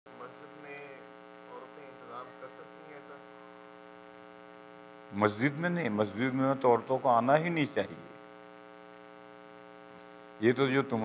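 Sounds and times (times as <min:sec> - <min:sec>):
electrical mains hum: 0:00.1 - 0:11.0.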